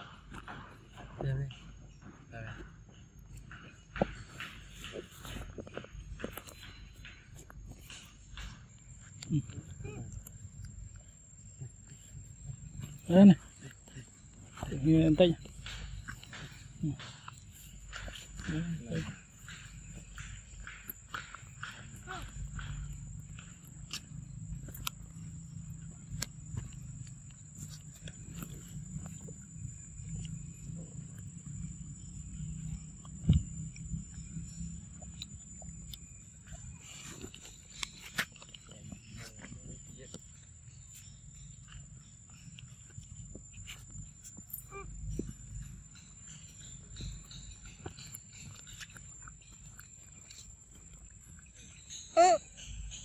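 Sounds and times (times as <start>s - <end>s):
monkey wavering call: 44.5s - 45.2s, 51.8s - 53.0s.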